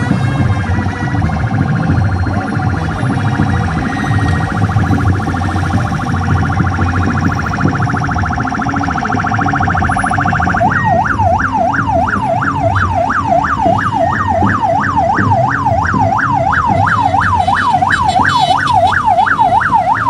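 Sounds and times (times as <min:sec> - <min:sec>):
electronic siren warbling: 0:00.0 - 0:20.0
low rumble of traffic: 0:00.0 - 0:20.0.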